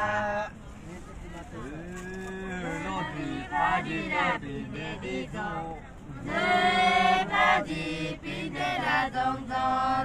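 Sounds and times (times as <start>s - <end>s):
group singing: 2.6s - 10.0s.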